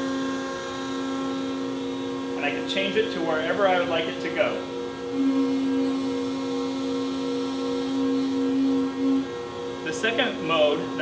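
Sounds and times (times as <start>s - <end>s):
motors and hydraulic pumps humming: 0.0s - 11.0s.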